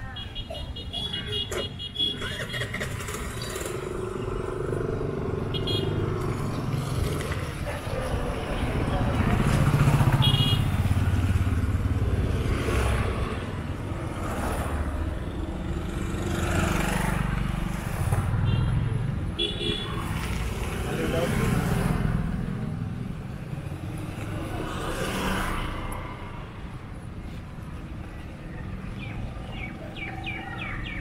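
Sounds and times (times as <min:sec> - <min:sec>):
motorcycles passing: 0:02.0 - 0:31.0.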